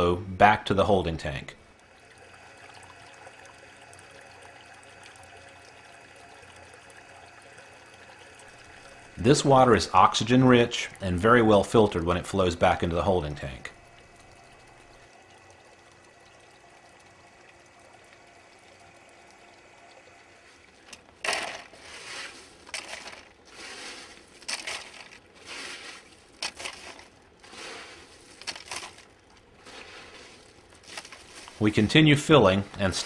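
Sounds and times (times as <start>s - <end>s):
water running from pipe into tank: 0.0s - 33.0s
rock scraping on rock and plastic: 20.9s - 31.7s.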